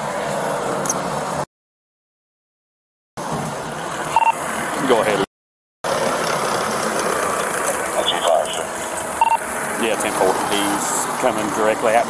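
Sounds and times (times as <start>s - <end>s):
idling vehicles and traffic: 0.0s - 1.5s, 3.2s - 12.0s
short electronic beep: 4.1s - 4.4s, 9.2s - 9.4s.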